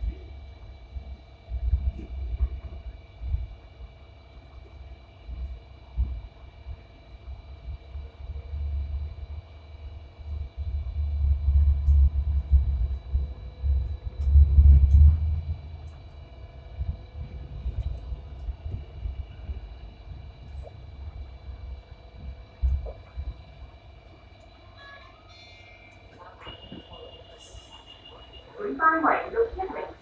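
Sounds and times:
faint steady whines: 0.0 - 30.0
tram wheels rumbling on track: 0.0 - 30.0.

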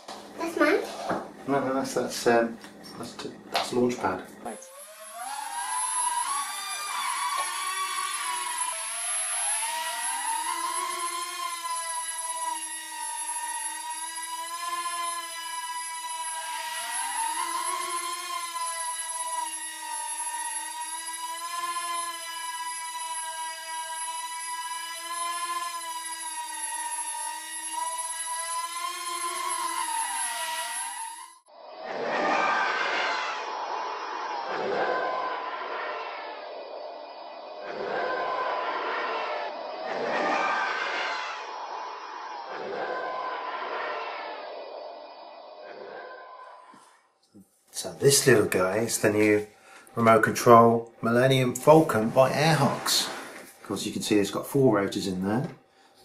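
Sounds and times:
toy quadcopter rotors whining: 0.4 - 47.2, 47.8 - 56.0.

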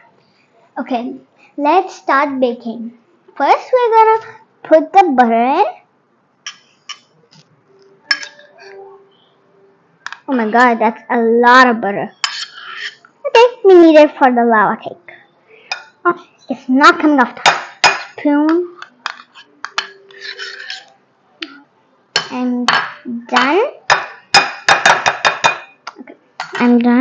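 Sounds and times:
spoon scraping: 8.0 - 8.8, 12.1 - 13.1, 18.8 - 21.0
metal spoon clinking ceramic bowl: 8.1 - 8.5
metal utensils clinking on bowls: 8.1 - 8.8, 18.8 - 20.9.

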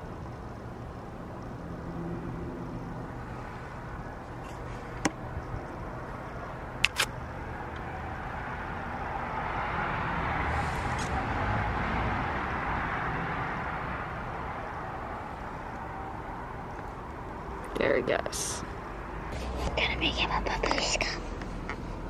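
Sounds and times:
road vehicle passing by: 1.5 - 22.0
sharp clicks: 6.8 - 7.9.

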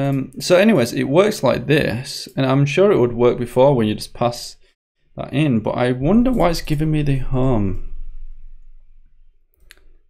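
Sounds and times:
faint low hum: 5.2 - 10.0.

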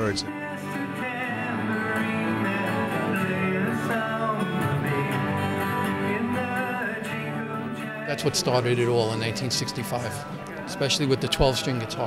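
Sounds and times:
acoustic guitars strumming chords: 0.0 - 12.0.

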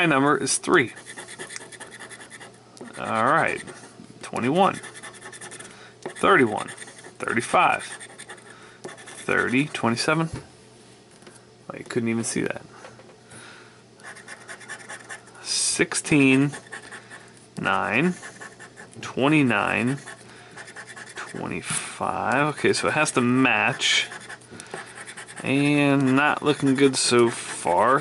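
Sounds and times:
scratching coating off lottery ticket: 0.8 - 3.8, 4.5 - 9.7, 23.8 - 28.0
metal tool scraping lottery ticket: 23.8 - 28.0.

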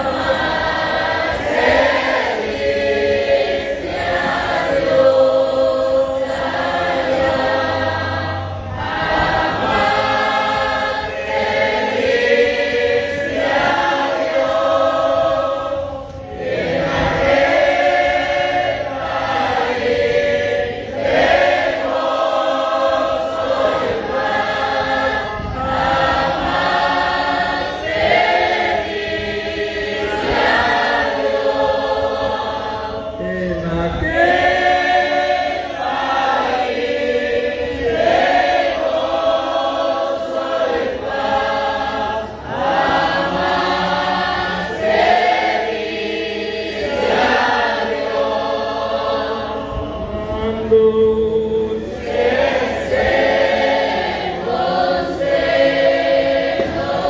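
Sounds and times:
choir singing: 0.0 - 57.0.

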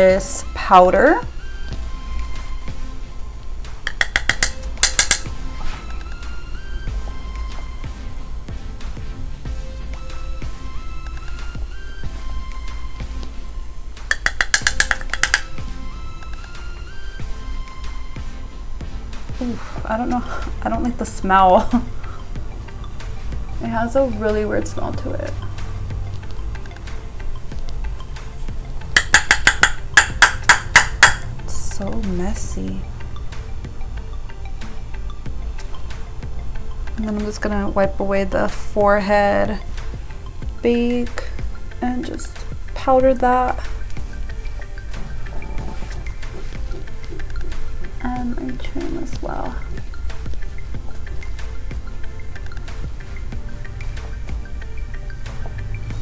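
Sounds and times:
soft held-tone music: 0.0 - 56.0
sharp tapping on makeup jar: 3.8 - 5.4, 14.1 - 15.6, 28.9 - 31.3, 46.3 - 48.0
sharp clicks: 3.9 - 5.3, 14.1 - 15.6.

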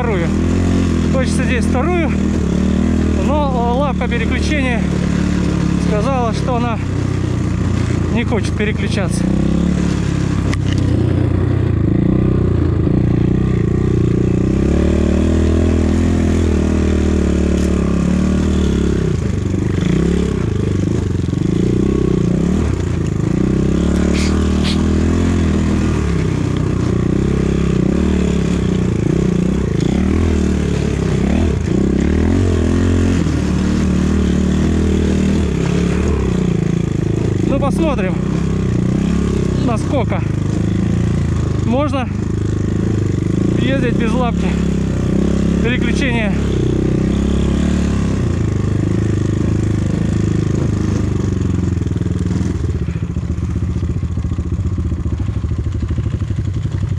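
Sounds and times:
motorcycle engine revving: 0.0 - 56.9.

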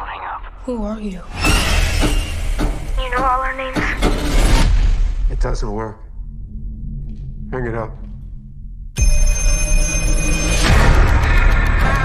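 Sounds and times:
low droning film score: 1.4 - 12.0
telephone bell ringing: 9.0 - 10.7.

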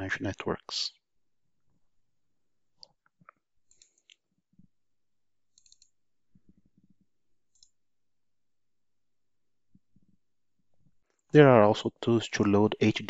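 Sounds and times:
computer mouse clicks: 2.8 - 4.7, 5.5 - 7.8.

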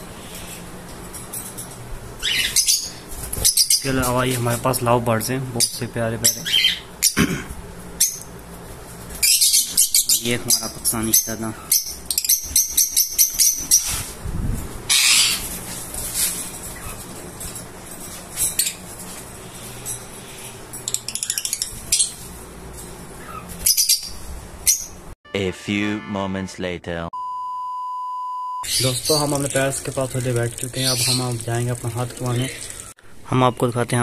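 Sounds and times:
caged birds chirping: 0.1 - 25.1, 28.6 - 34.0.

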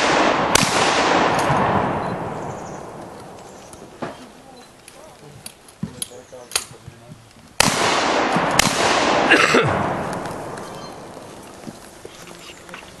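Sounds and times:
loud gunshot: 0.0 - 2.6, 7.6 - 11.0
sharp crack: 0.0 - 6.8, 7.5 - 12.1
gun handling clicks: 4.8 - 6.7.

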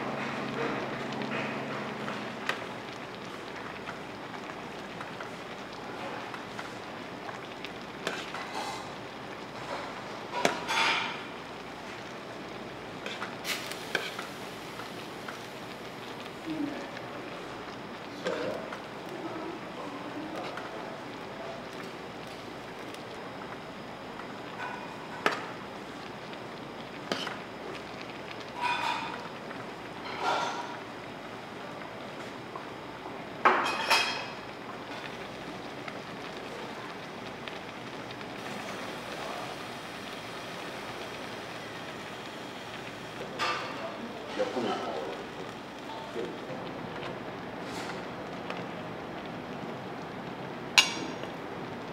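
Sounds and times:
sauce bubbling in a pan: 0.0 - 51.9
steady background hiss: 0.0 - 51.9.

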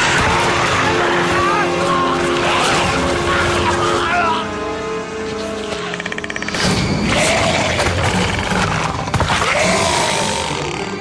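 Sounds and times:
dramatic orchestral music: 0.0 - 11.0.

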